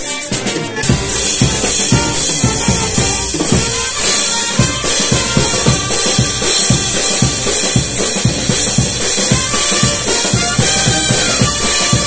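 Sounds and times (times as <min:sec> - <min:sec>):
drum kit beat: 0:00.0 - 0:12.0
live band playing dance music: 0:00.0 - 0:12.0.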